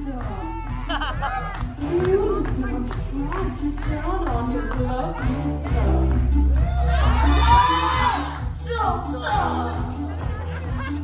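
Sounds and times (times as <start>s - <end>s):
backing track with heavy bass: 0.0s - 11.0s
audience cheering and whooping: 0.2s - 1.8s, 6.5s - 11.0s.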